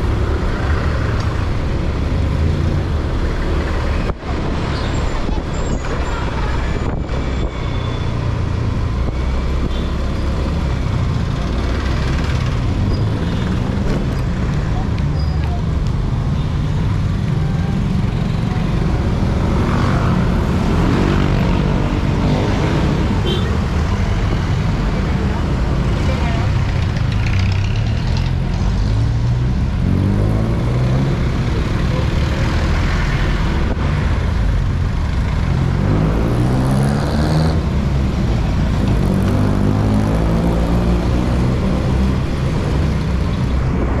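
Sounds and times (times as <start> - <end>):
surrounding traffic noise: 0.0 - 44.0.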